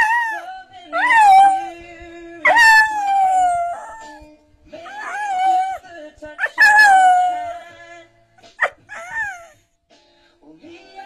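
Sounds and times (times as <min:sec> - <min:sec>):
dog howling: 0:00.0 - 0:01.8, 0:02.4 - 0:04.2, 0:04.8 - 0:05.8, 0:06.4 - 0:07.7, 0:08.6 - 0:09.6.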